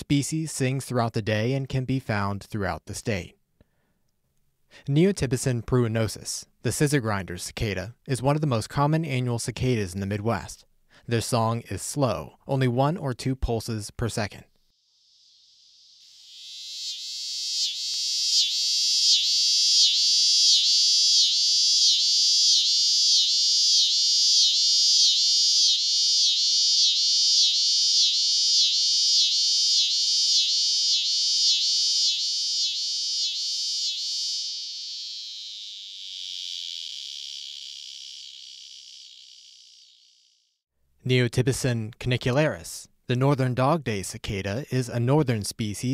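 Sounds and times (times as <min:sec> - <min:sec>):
cicada buzzing song: 0:14.7 - 0:40.5.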